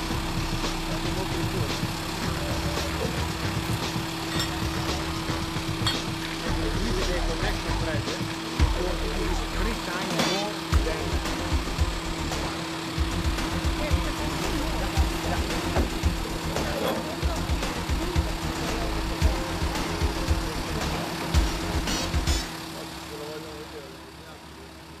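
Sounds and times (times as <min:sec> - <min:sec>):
engine humming: 0:00.0 - 0:25.0.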